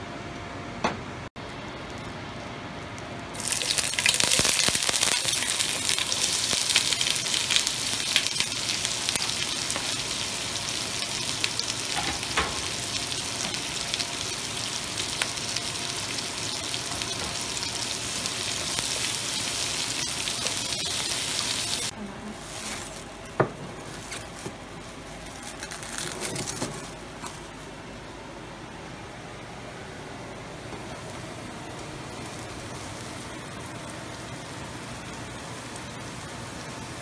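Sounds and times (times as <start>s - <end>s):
onions sizzling in oil: 3.3s - 23.0s, 30.8s - 37.0s.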